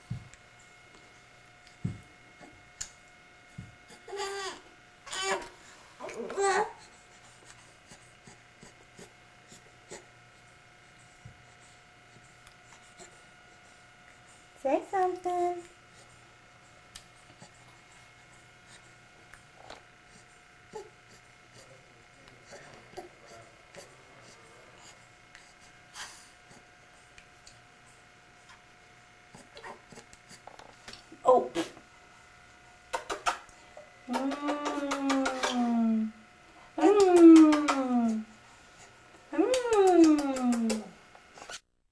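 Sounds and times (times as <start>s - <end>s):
faint steady hum: 0.0s - 41.9s
soft kisses on a cheek: 32.9s - 35.6s.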